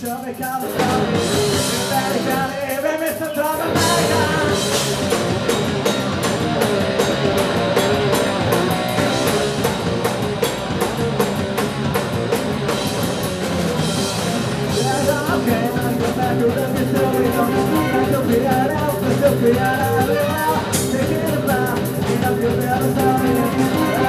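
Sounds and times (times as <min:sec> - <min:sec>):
person singing: 0:00.0 - 0:05.0, 0:14.7 - 0:24.0
rock band playing: 0:00.0 - 0:24.0.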